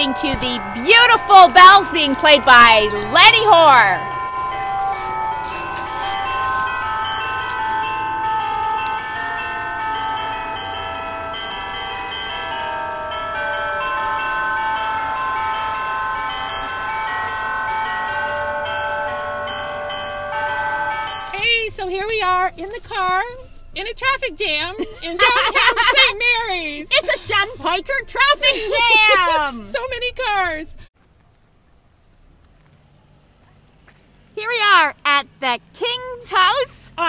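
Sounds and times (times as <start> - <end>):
voices: 0.0 - 4.2, 21.3 - 30.8, 34.4 - 37.0
church bells playing a melody: 0.0 - 23.6, 24.9 - 26.2.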